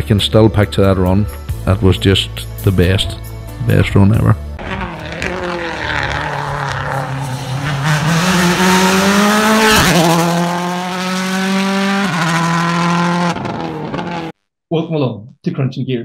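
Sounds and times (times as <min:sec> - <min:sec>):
rally car engine revving: 0:04.4 - 0:14.4.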